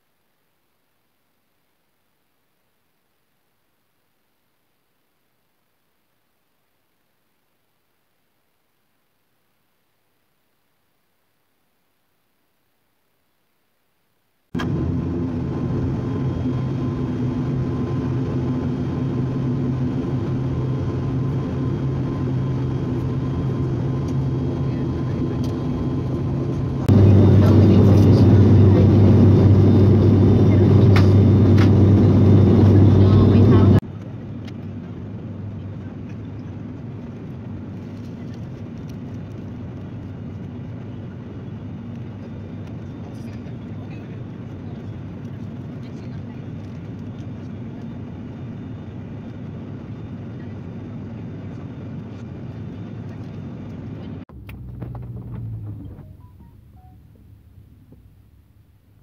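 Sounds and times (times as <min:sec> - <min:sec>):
propeller engines droning: 0:14.6 - 0:58.4.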